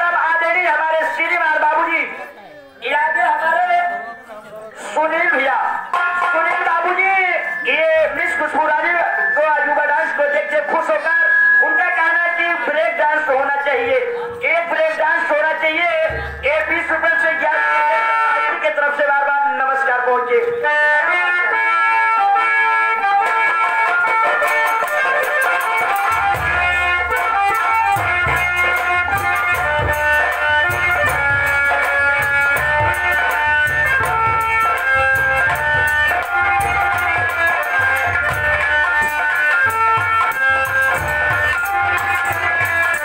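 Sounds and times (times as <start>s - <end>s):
folk instrumental melody: 20.4s - 43.0s
heavy drum beat: 24.6s - 43.0s.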